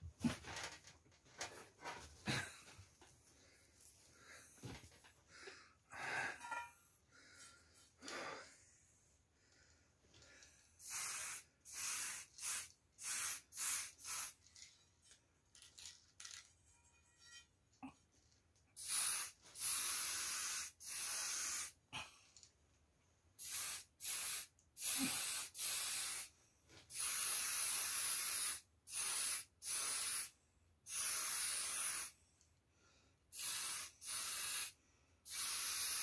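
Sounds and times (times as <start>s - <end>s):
aerosol spray can hissing: 10.8s - 14.4s, 18.8s - 21.8s, 23.4s - 26.3s, 26.9s - 32.2s, 33.3s - 36.0s.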